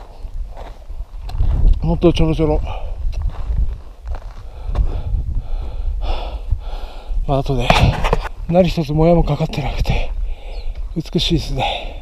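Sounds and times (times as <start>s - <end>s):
wind rumble on microphone: 0.0s - 12.0s
person breathing heavily: 2.6s - 3.1s, 4.3s - 7.3s, 9.8s - 10.9s, 11.5s - 12.0s.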